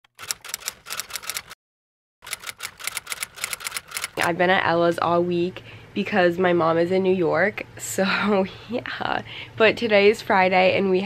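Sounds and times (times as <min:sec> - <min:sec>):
rapid clicking: 0:00.1 - 0:01.6, 0:02.2 - 0:04.3.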